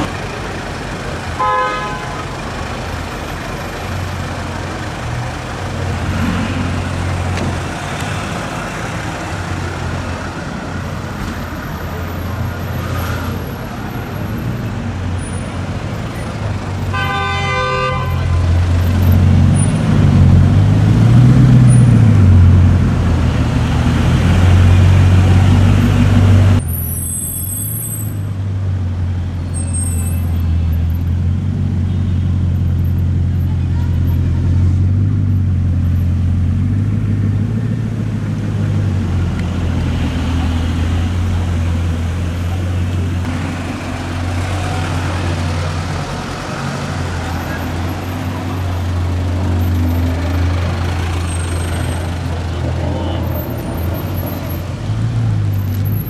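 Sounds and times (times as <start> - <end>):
car engine rumbling: 0.0 - 17.0, 17.7 - 56.0
car horn toot: 1.4 - 2.3, 16.9 - 18.6.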